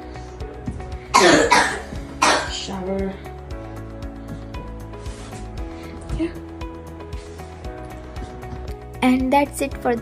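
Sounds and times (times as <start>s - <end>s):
background music: 0.0s - 10.0s
person coughing: 1.1s - 2.7s.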